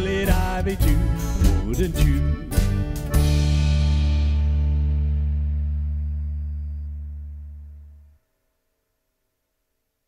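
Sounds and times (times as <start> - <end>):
acoustic guitar chord ringing: 1.1 - 8.2.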